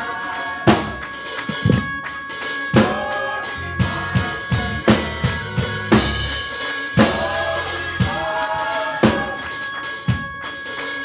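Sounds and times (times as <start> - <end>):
drum kit played with sticks: 0.0 - 11.0
held keyboard chords: 0.0 - 11.0
electric bass line: 3.6 - 8.3.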